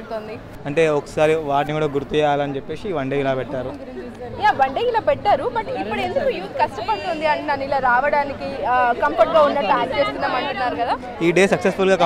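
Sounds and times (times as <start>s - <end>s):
young people chattering: 0.0s - 12.0s.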